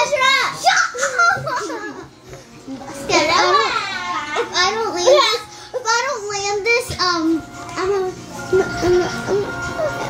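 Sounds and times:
child singing wordless tune: 3.1 - 10.0.

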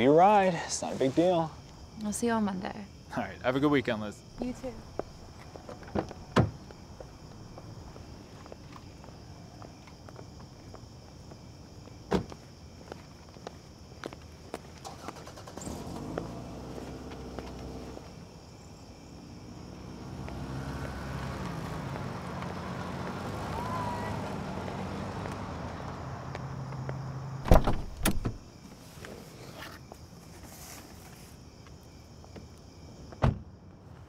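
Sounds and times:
footsteps on asphalt: 4.8 - 15.2, 16.2 - 18.2, 20.2 - 24.0, 24.6 - 27.2
car engine starting and idling: 14.8 - 18.2
car door shutting: 27.4 - 28.4, 33.2 - 33.5.

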